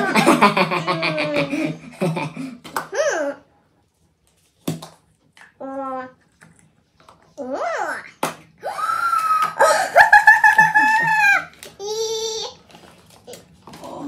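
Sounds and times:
man and woman laughing: 0.0s - 2.6s, 9.6s - 11.4s.

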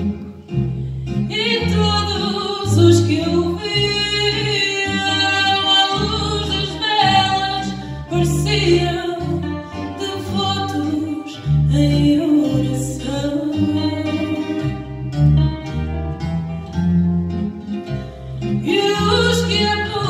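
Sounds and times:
plucked guitars: 0.0s - 20.0s
woman singing: 1.2s - 15.1s, 18.5s - 20.0s.

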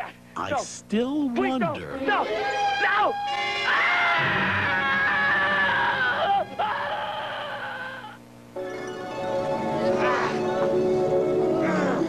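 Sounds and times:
long high-pitched scream: 2.1s - 8.2s.

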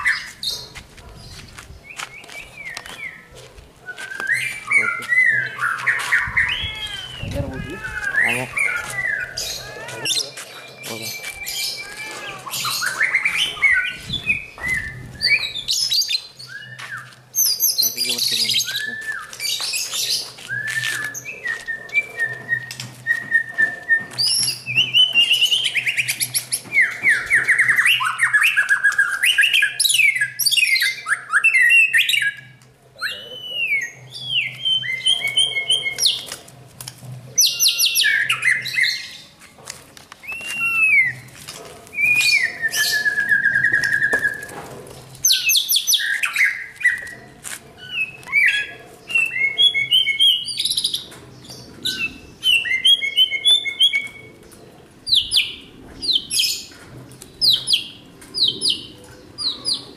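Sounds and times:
birds singing: 0.0s - 59.9s.

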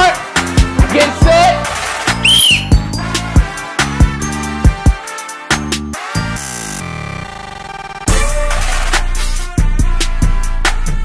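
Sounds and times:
hip-hop music with heavy beat: 0.0s - 6.6s, 8.0s - 11.0s
short whistle blast: 2.2s - 3.0s.

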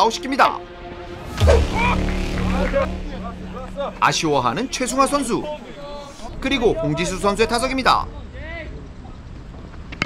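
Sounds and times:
low steady hum: 0.7s - 8.1s
men's voices: 1.3s - 8.7s.

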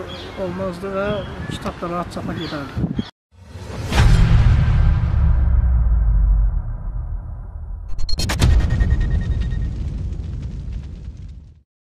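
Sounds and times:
deep rumbling boom: 3.4s - 11.6s
faint crackle: 8.7s - 11.6s.

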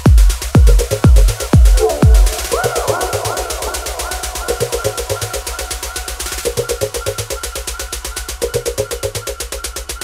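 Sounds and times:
electronic dance music: 0.0s - 7.7s.

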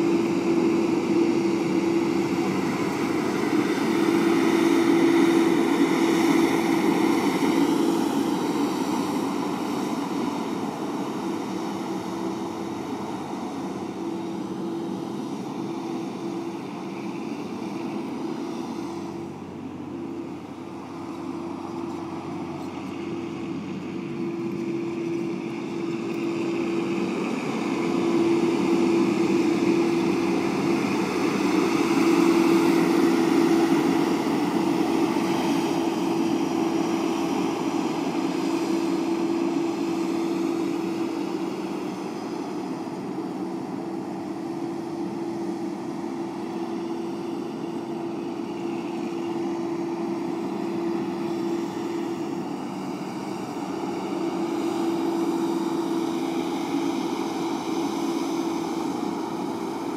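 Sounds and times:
diesel truck engine driving: 0.0s - 59.9s.

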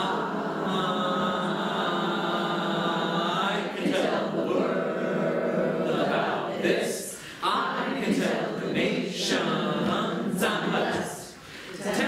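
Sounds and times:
choir singing unaccompanied: 0.0s - 12.0s.

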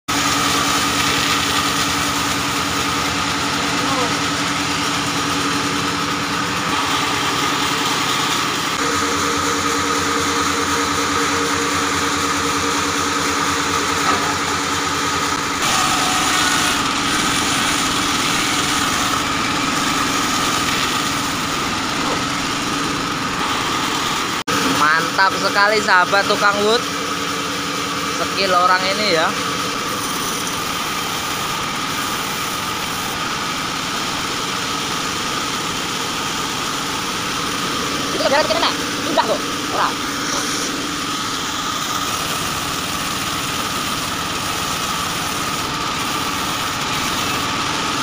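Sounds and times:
band sawmill droning: 0.1s - 48.0s.

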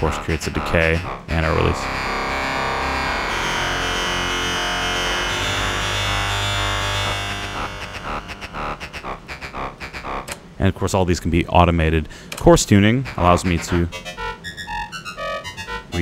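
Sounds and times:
low synth tone: 0.0s - 10.4s
synthesizer note: 0.0s - 10.4s, 12.7s - 16.0s.

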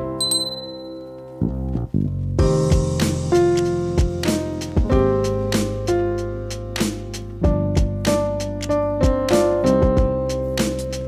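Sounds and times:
background keyboard music: 0.0s - 11.0s
notification bell ding: 0.2s - 1.2s.

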